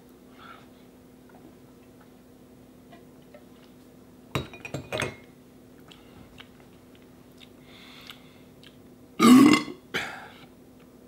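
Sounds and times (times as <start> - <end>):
glassware clinking: 4.4 - 5.3.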